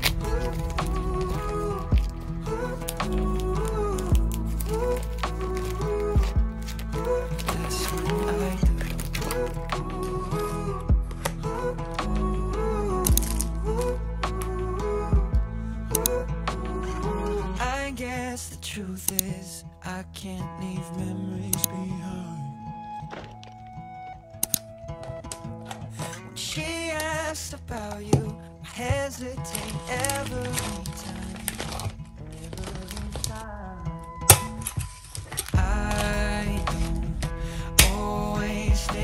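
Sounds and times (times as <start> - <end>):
soft pop song: 0.0 - 39.0.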